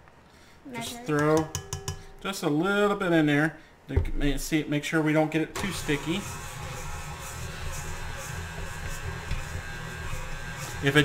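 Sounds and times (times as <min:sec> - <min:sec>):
stand mixer motor hum: 0:05.6 - 0:11.0.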